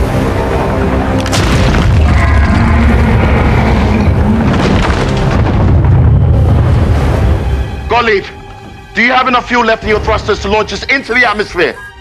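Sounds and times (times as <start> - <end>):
booms and crashes: 1.3 - 2.6, 4.3 - 7.3.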